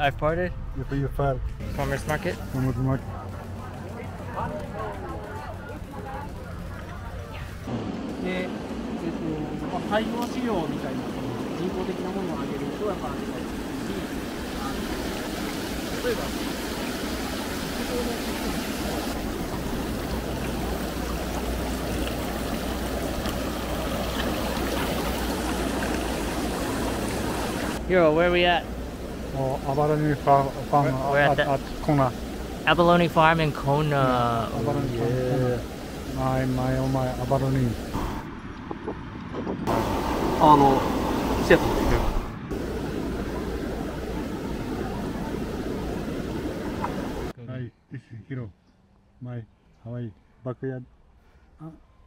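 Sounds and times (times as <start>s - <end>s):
steady rumbling: 0.0s - 47.4s
water jets splashing into tanks: 1.6s - 47.4s.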